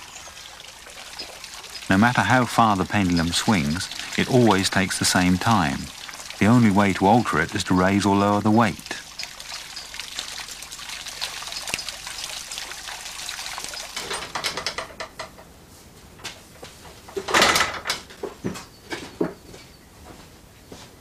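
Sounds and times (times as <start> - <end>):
water trickling and pouring: 0.0 - 15.2
rushing water noise: 0.0 - 15.4.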